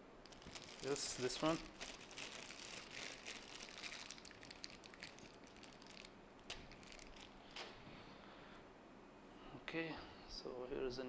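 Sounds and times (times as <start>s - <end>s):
crinkling and rustling: 0.2s - 7.8s.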